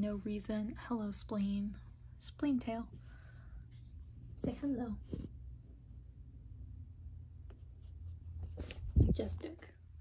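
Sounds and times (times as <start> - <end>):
low room hum: 0.0 - 10.0
rubbing on microphone: 7.6 - 9.5.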